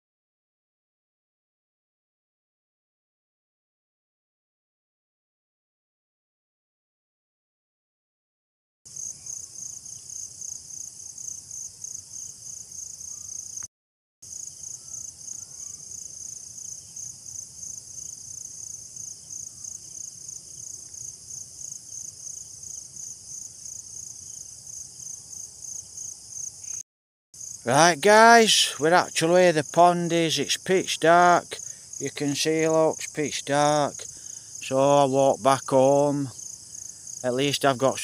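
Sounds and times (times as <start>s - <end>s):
crickets chirping: 8.9s - 26.8s, 27.4s - 38.0s.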